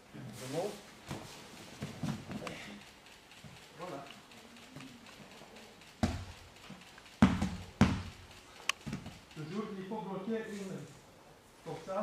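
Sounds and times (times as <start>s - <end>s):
thuds on training mat: 7.2s - 8.1s.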